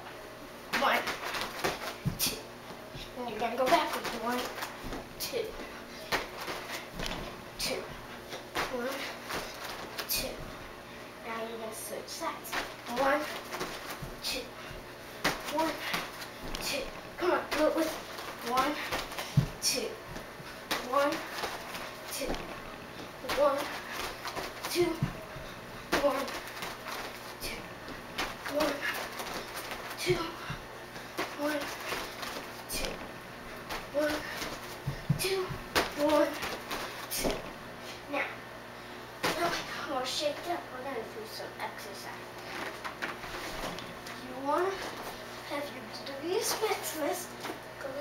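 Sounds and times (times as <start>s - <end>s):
child talking: 0.7s - 1.2s, 2.2s - 4.6s, 5.2s - 5.7s, 7.6s - 8.0s, 8.6s - 9.2s, 10.1s - 10.6s, 11.2s - 13.4s, 14.2s - 14.6s, 15.4s - 16.0s, 16.6s - 19.0s, 19.6s - 20.0s, 20.8s - 21.3s, 22.1s - 22.5s, 23.2s - 23.8s, 24.7s - 25.2s, 26.0s - 26.4s, 27.4s - 27.7s, 28.5s - 29.0s, 30.0s - 30.6s, 31.3s - 31.8s, 32.7s - 33.0s, 33.9s - 34.4s, 35.2s - 36.5s, 38.1s - 38.4s, 39.2s - 42.2s, 44.2s - 48.0s
heavy thumps: 12.5s - 37.6s
footsteps on carpet: 33.5s - 37.4s.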